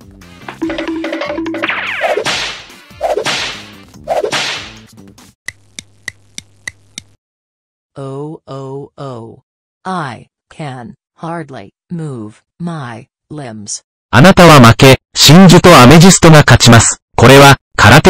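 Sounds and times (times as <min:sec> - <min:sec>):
whip swishes and lashes: 0:01.7 - 0:04.9
sharp whip cracks: 0:01.8 - 0:04.9.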